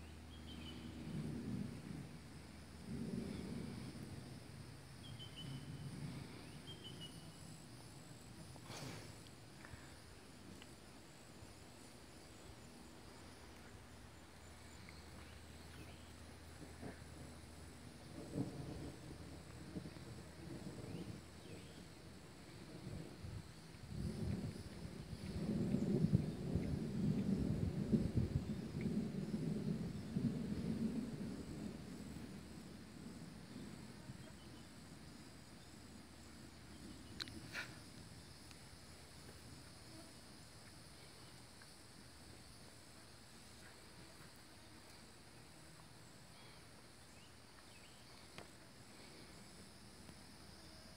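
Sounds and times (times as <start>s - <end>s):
distant thunder rolling: 0.0s - 39.7s
insects droning: 0.0s - 50.9s.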